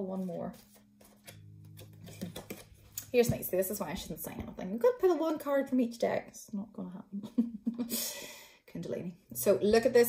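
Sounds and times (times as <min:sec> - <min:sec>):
cards tapping and sliding: 0:00.5 - 0:03.4.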